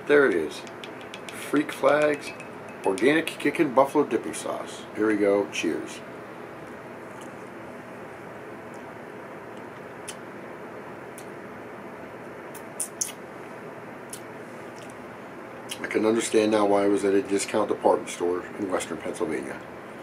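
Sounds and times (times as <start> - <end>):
mouth and lip clicks: 9.7 - 10.2, 12.5 - 13.2.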